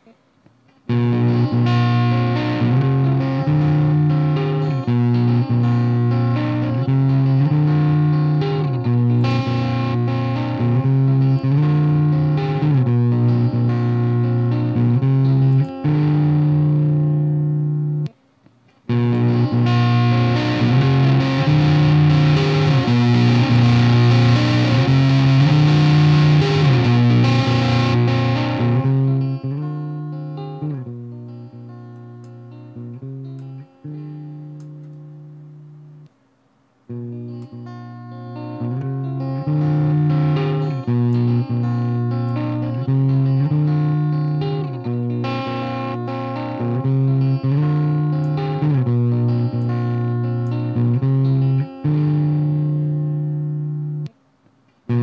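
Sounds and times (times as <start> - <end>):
clean electric guitar chords: 0.0 - 18.2, 18.9 - 36.1, 36.9 - 54.2.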